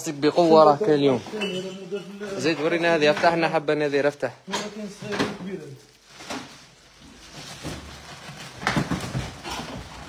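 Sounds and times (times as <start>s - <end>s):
plastic wrapping rustling: 0.0s - 10.0s
plastic bins knocking: 4.5s - 10.0s.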